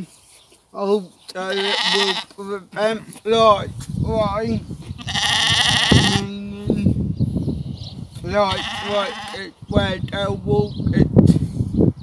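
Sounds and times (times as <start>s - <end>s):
sheep bleating: 1.4s - 2.3s, 5.0s - 6.3s, 8.4s - 9.5s.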